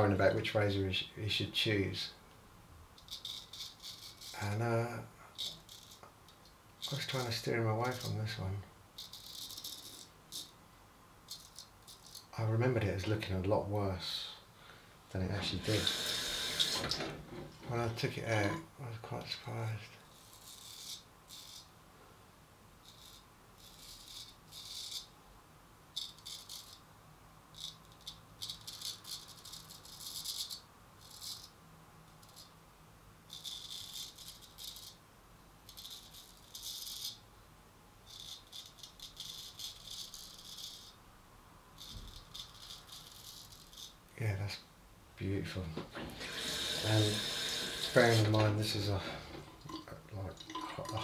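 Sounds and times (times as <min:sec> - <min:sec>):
razor scraping stubble: 0:15.3 - 0:18.6, 0:46.0 - 0:49.8.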